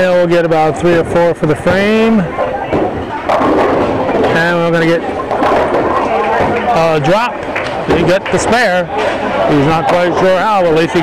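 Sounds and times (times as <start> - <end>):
bowling ball striking pins: 1.6 - 9.2.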